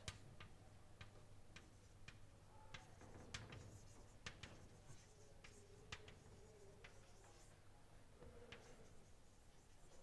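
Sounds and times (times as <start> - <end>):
chalk ticking on blackboard: 0.0 - 7.6.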